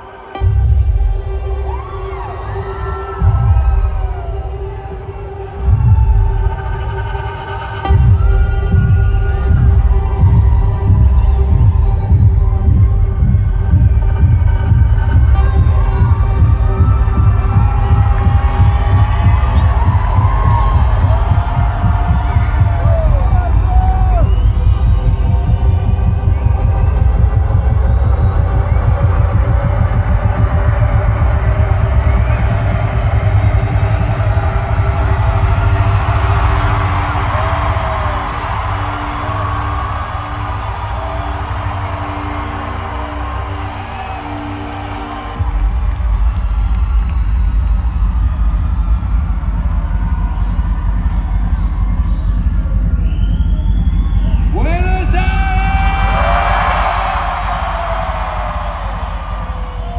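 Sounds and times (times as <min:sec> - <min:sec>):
crowd cheering: 0:00.0 - 0:59.9
electronic dance music: 0:00.0 - 0:59.9
man shouting over loudspeakers: 0:54.4 - 0:56.3.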